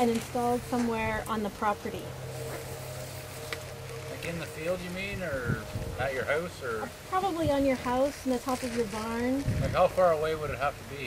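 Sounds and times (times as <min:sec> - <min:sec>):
steady low engine-like hum: 0:00.0 - 0:11.0.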